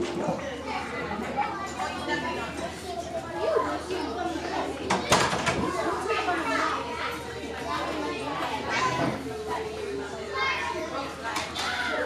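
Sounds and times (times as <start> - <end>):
children talking and playing: 0.0 - 12.0
indistinct voices in large room: 0.0 - 12.0.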